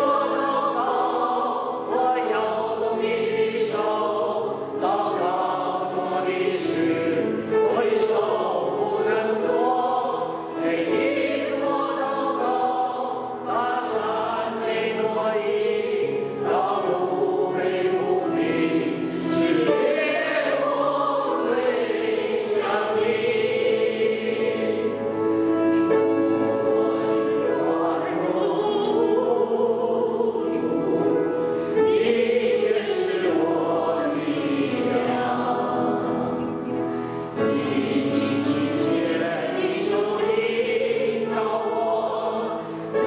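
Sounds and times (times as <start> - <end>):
group singing worship song: 0.0 - 36.5, 37.1 - 43.0.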